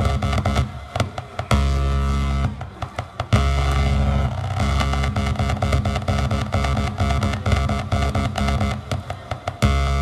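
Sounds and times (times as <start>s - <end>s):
buzzing synth drone: 3.4s - 8.8s, 9.6s - 10.0s.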